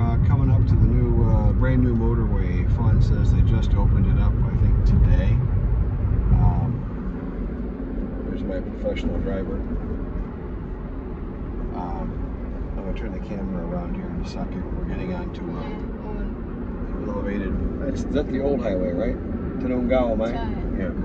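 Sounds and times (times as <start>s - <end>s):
man talking: 0.0s - 5.4s, 6.3s - 6.9s, 8.3s - 9.8s, 11.7s - 12.2s, 12.8s - 15.9s, 16.9s - 21.0s
car road and engine rumble: 0.0s - 21.0s.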